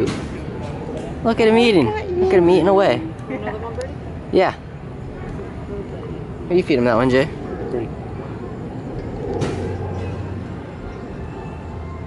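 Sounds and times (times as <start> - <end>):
outdoor background noise: 0.0 - 12.0
steady low hum: 0.0 - 12.0.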